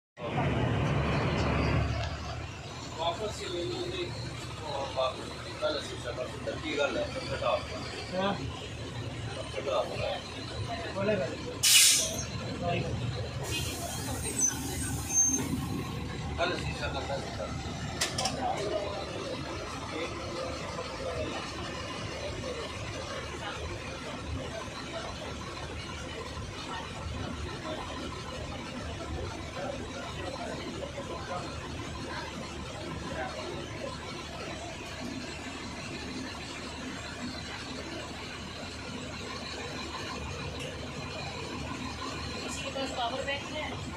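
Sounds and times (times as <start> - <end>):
bus engine idling: 0.2 - 43.9
people talking indistinctly: 2.0 - 43.9.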